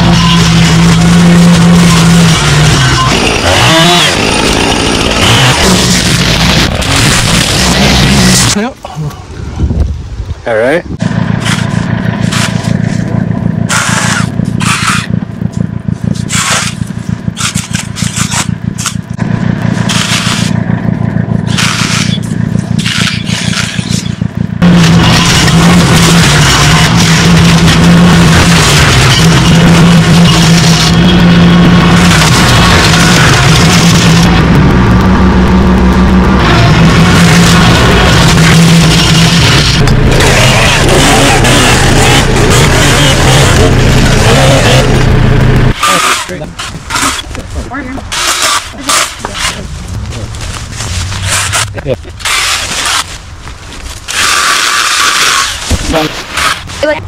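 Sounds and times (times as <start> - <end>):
chainsaw at high revs: 0.0 - 8.6, 36.4 - 46.3
engine running steadily: 0.0 - 57.0
brush cracking and breaking: 46.6 - 56.8.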